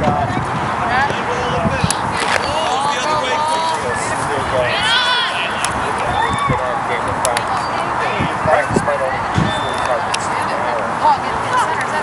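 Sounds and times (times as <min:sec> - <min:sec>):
outdoor noise: 0:00.0 - 0:12.0
voices calling out: 0:00.0 - 0:12.0.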